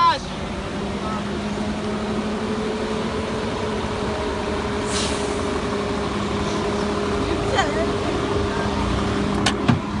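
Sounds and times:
engine humming steadily: 0:00.0 - 0:10.0.

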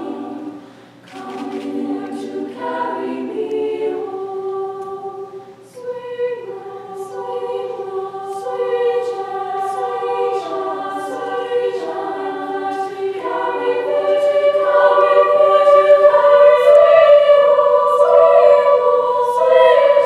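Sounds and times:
female choir singing chords: 0:00.0 - 0:20.0.

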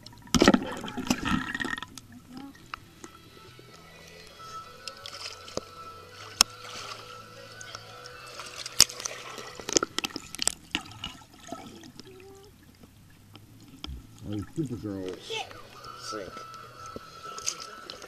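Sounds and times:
background music: 0:00.0 - 0:18.0
water sloshing and splashing: 0:00.0 - 0:18.0.

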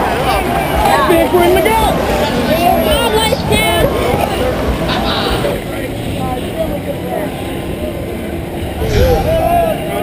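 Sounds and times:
wind and water rumble: 0:08.7 - 0:10.0
low thump: 0:08.8 - 0:09.8.

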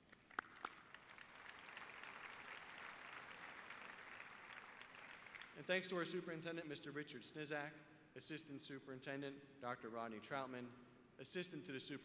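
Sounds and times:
audience applause: 0:00.0 - 0:05.6.

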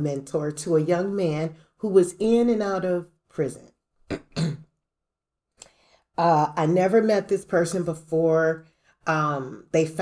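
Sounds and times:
person clearing throat: 0:04.1 - 0:04.7.

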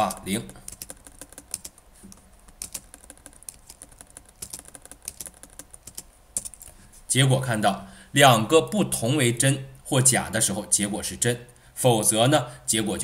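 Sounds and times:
keyboard typing clicks: 0:00.1 - 0:06.7.

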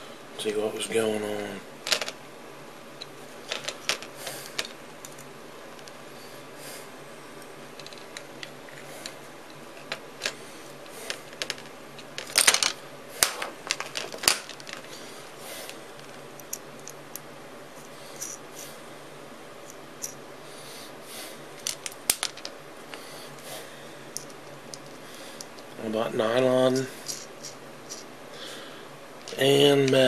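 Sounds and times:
small metal clicks and rattles: 0:07.8 - 0:09.2, 0:09.8 - 0:15.0.

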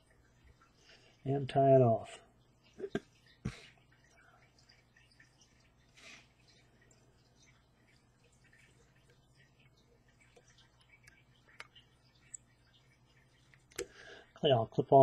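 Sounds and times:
faint room hum: 0:00.0 - 0:15.0.

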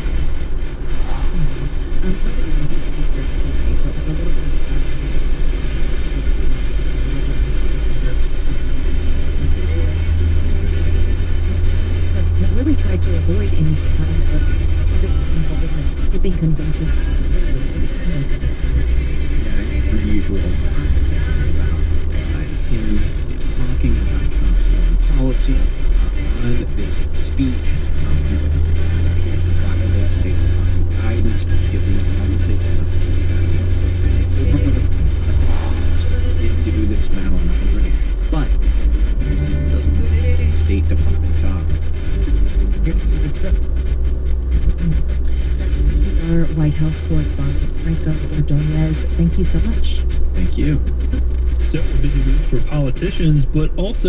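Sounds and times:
car road rumble: 0:00.0 - 0:54.0
radio news voice: 0:00.0 - 0:54.0.

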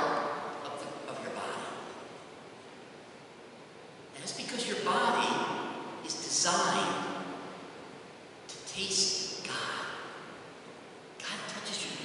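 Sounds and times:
man speaking: 0:00.0 - 0:02.0, 0:04.1 - 0:07.4, 0:08.5 - 0:10.2, 0:11.2 - 0:12.0
low steady hiss: 0:00.0 - 0:12.0.

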